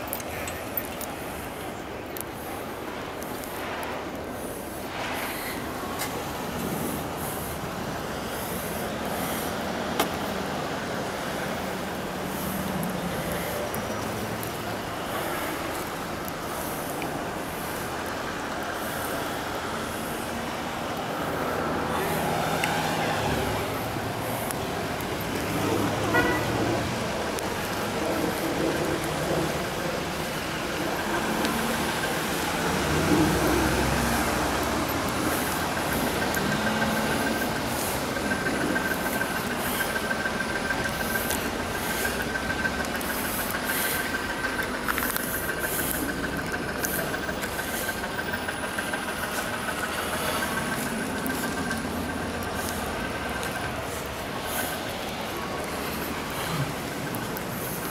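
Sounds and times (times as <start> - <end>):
traffic on snowy street: 0.0 - 57.9.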